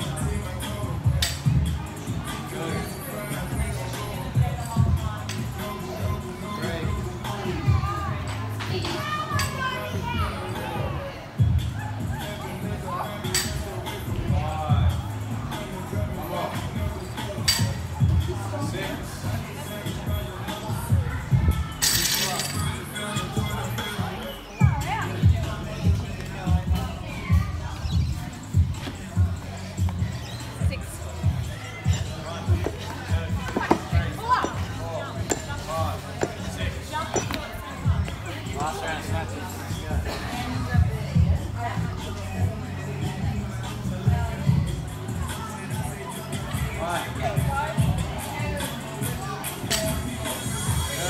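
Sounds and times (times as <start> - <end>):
background music: 0.0 - 51.0
voices calling and chattering: 0.0 - 51.0.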